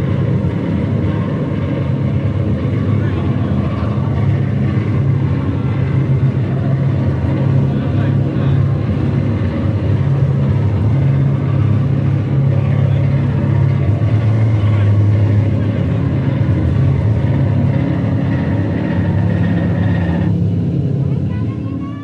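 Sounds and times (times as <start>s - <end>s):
distorted electric guitar drone: 0.0s - 22.0s.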